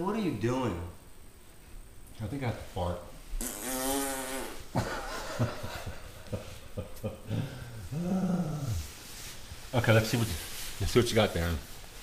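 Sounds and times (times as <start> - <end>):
buzzy fart noise: 3.3 - 4.8.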